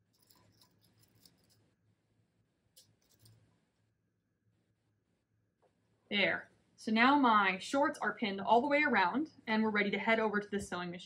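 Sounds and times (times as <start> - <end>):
small clicks of pins: 2.8 - 3.4.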